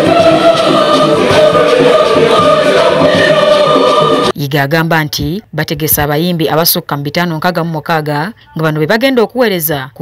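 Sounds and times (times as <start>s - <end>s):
choir singing long notes: 0.0s - 4.4s.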